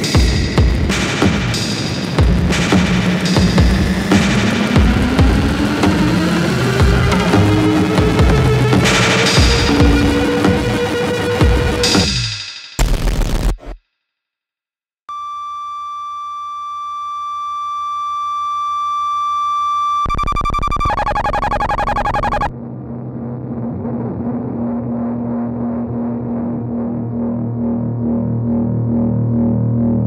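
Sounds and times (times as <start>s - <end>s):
low throbbing drone: 0.0s - 12.1s, 21.4s - 30.0s
harsh rapidly pulsing synth: 2.2s - 12.1s, 20.1s - 22.5s
synthesized tone with overtones: 2.6s - 12.1s, 15.1s - 22.5s.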